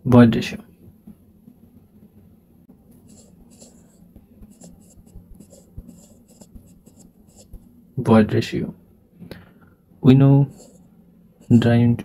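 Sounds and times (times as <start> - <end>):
stylus tapping and scratching: 2.9 - 7.8, 10.5 - 11.7.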